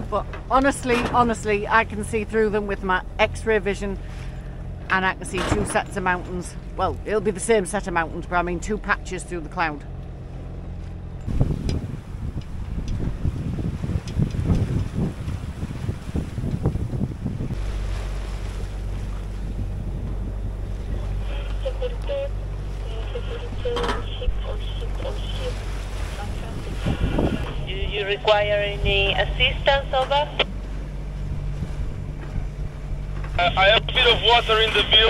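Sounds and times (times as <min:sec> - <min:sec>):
boat engine hum: 0:00.0 - 0:35.0
sea water rushing past boat: 0:00.0 - 0:35.0
wind buffeting microphone: 0:10.0 - 0:33.2
faint voices over radio: 0:21.1 - 0:25.6, 0:33.4 - 0:35.0.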